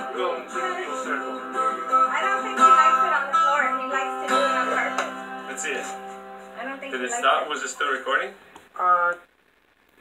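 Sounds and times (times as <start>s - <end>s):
song through small speakers: 0.0s - 6.6s.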